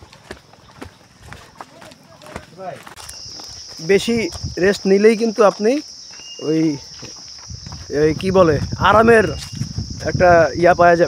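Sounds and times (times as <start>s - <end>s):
insect drone: 0.0s - 11.0s
man speaking: 3.8s - 6.9s, 7.9s - 11.0s.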